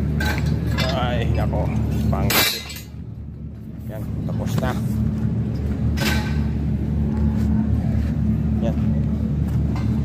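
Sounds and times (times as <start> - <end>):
constant hum: 0.0 - 10.0
low engine drone: 0.0 - 10.0.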